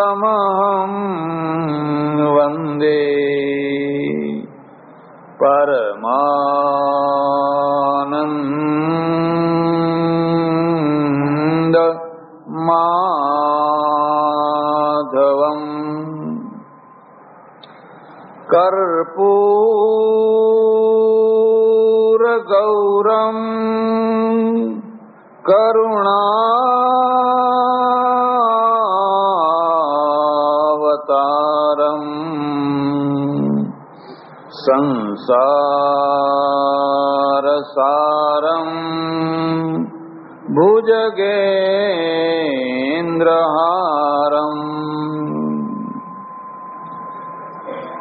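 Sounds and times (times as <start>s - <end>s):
person chanting long sung notes: 0.0s - 4.6s, 5.4s - 16.8s, 18.5s - 48.0s.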